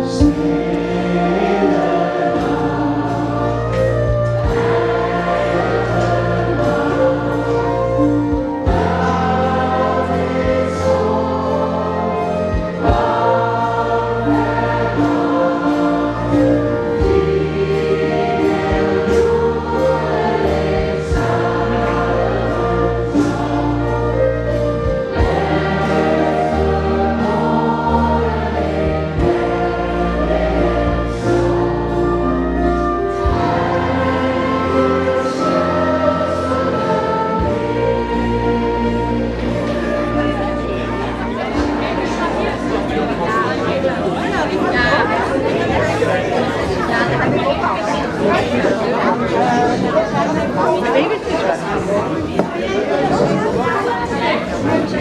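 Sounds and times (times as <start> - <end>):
choir singing long notes: 0.0 - 55.0.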